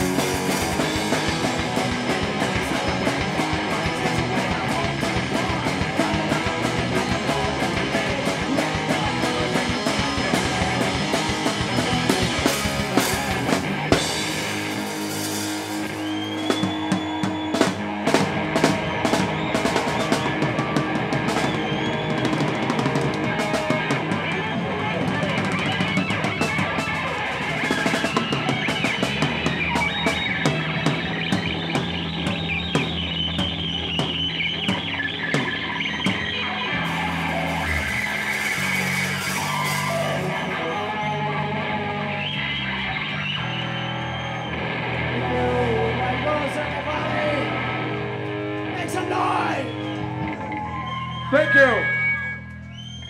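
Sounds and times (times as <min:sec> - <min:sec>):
drum kit beat with cymbals: 0:00.0 - 0:40.6
rock band chord ringing: 0:00.0 - 0:42.4
bass guitar: 0:00.0 - 0:53.0
electric guitar: 0:00.0 - 0:53.0.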